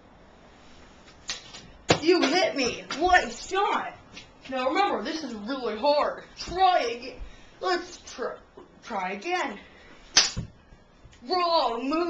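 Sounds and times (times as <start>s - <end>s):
sharp smack: 10.1s - 10.5s.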